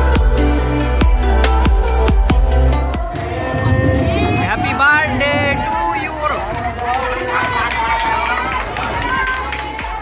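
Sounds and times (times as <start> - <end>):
people talking and calling out: 1.9 - 10.0.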